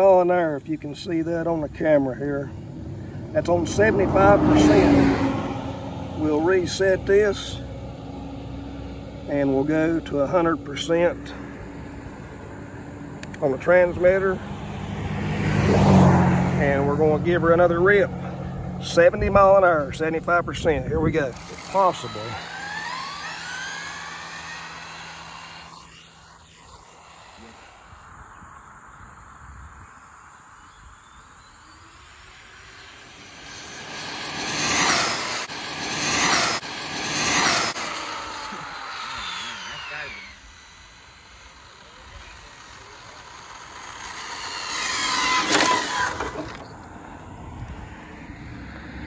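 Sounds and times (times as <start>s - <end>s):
electric rc car motor whining: 3.4s - 7.6s, 21.0s - 28.6s, 31.0s - 49.0s.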